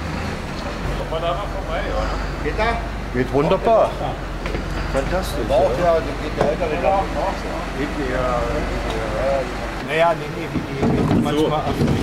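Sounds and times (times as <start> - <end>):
truck engine rumbling: 0.0 - 12.0
men talking: 0.7 - 12.0.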